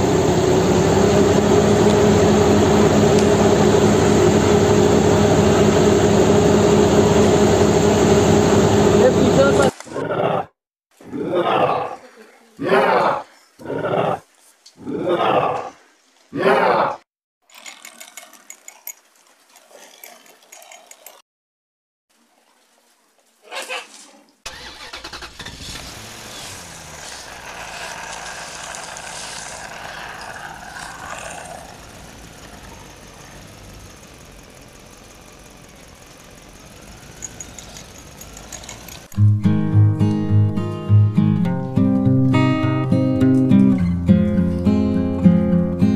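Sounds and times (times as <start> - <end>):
engine-like running with whine: 0.0 - 9.7, 24.5 - 39.2
loud strummed guitar music: 39.2 - 45.9.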